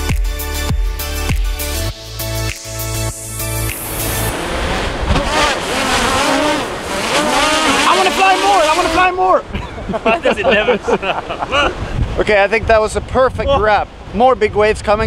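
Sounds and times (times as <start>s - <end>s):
ocean surf breaking: 3.4s - 13.0s
people talking: 7.6s - 15.0s
wind on microphone: 10.6s - 15.0s.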